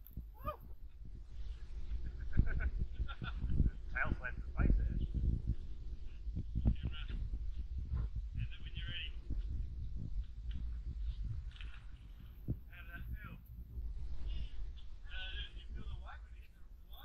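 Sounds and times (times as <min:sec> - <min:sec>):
steady low rumble: 0:00.0 - 0:17.0.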